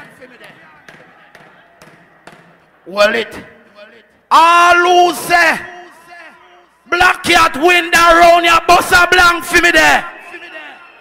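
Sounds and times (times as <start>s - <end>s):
faint background noise: 0.0s - 11.0s
man's voice: 2.9s - 10.9s.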